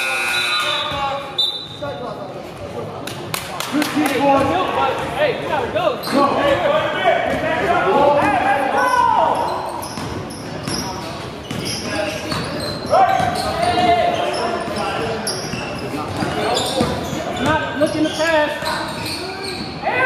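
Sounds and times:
shoe squeaks and knocks: 0:09.3 - 0:19.8
basketball dribbling: 0:15.4 - 0:18.2.

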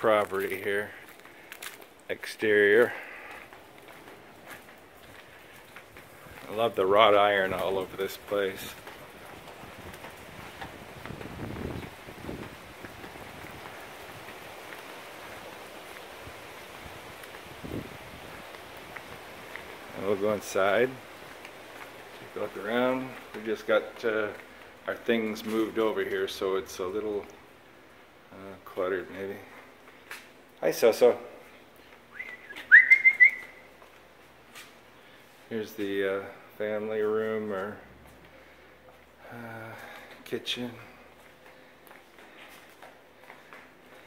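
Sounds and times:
outdoor background hiss: 0:00.0 - 0:44.0
person whistling: 0:32.1 - 0:33.7.

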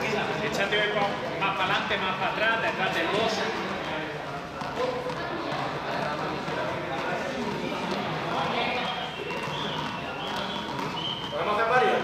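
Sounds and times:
chatter of voices echoing: 0:00.0 - 0:12.0.

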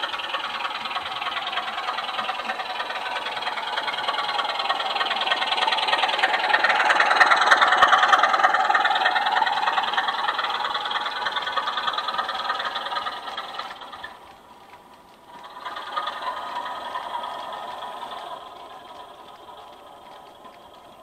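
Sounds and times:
model locomotive engine: 0:00.0 - 0:21.0
model train wheels rattling: 0:00.0 - 0:21.0.

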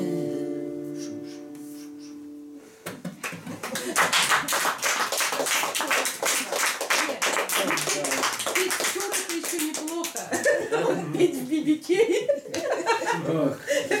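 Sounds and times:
acoustic guitar chord: 0:00.0 - 0:02.7
audience applause: 0:03.2 - 0:10.6.

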